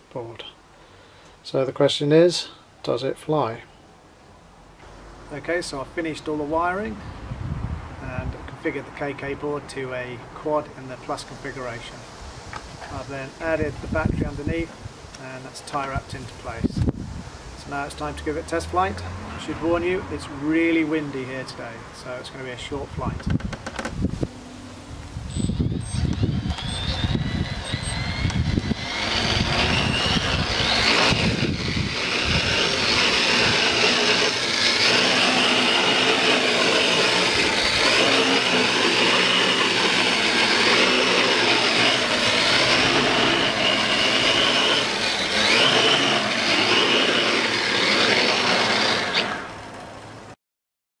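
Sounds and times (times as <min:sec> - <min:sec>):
wind buffeting microphone: 0:07.0 - 0:08.5, 0:13.6 - 0:15.0, 0:16.4 - 0:17.4, 0:22.9 - 0:24.4, 0:25.0 - 0:33.8
drone motors whining: 0:25.3 - 0:49.8.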